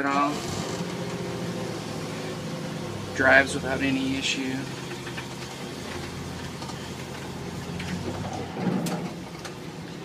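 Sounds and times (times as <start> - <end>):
road noise: 0.0 - 10.0
truck engine humming: 0.0 - 10.0.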